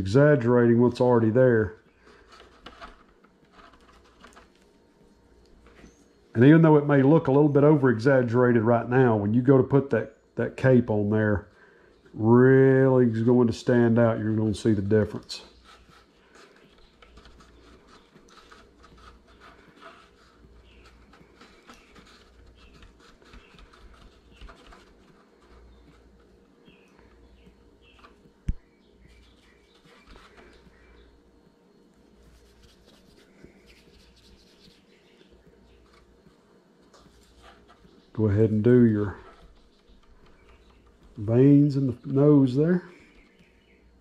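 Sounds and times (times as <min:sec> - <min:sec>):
fingers rubbing modeling clay: 0:15.1 - 0:26.5, 0:32.2 - 0:36.2.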